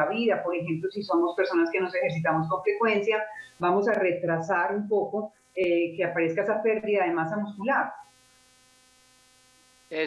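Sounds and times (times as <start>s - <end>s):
person speaking: 0.0s - 5.0s
faint electrical hum: 0.0s - 10.0s.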